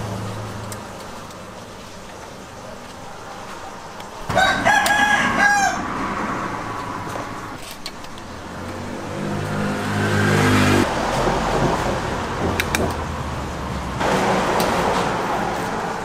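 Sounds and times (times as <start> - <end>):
rooster crowing: 4.3 - 6.6
vehicle engine revving: 8.4 - 16.0.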